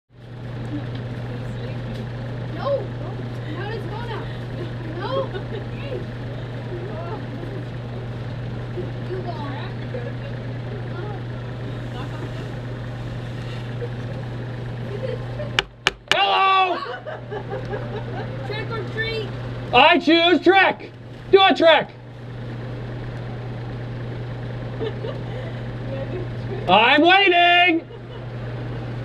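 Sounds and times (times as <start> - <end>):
steady low hum: 0.2 - 29.0
children and adults talking: 1.1 - 15.4, 18.0 - 22.1.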